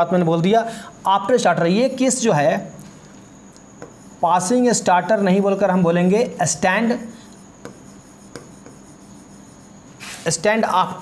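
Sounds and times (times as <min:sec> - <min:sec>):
steady high-pitched whine: 0:00.0 - 0:11.0
pen tapping and rubbing on board: 0:03.8 - 0:04.2, 0:07.2 - 0:09.8.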